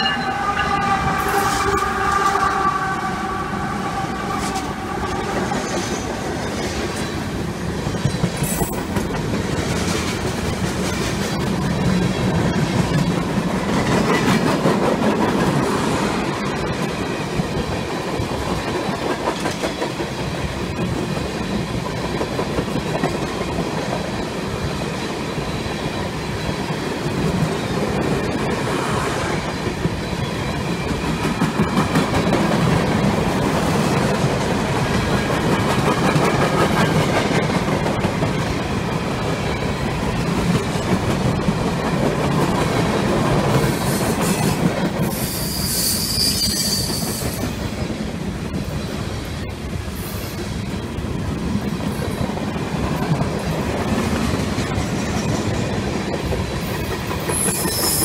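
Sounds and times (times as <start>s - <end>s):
train wheels rumbling on rails: 0.0s - 58.0s
high-pitched wheel squeal: 45.1s - 47.4s, 57.3s - 58.0s.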